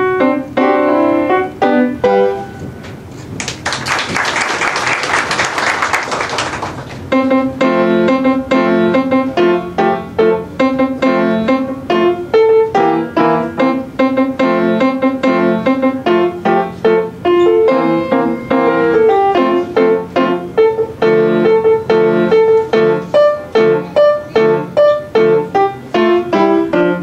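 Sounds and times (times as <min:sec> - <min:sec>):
grand piano playing: 0:00.0 - 0:03.2, 0:07.0 - 0:27.0
audience applause: 0:03.4 - 0:07.0.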